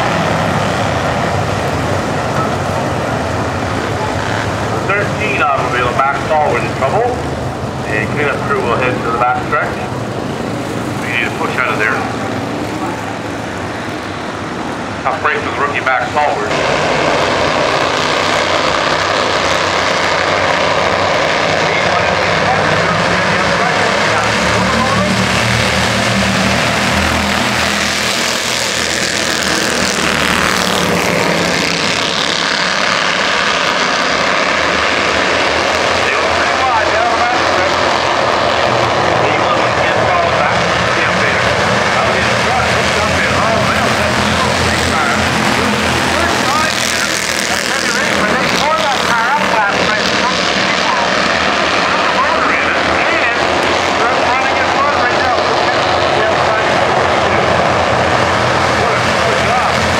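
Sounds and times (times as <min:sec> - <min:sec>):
race car engines buzzing: 0:00.0 - 0:59.9
crowd voices: 0:01.8 - 0:19.3, 0:20.2 - 0:32.4, 0:35.3 - 0:59.9.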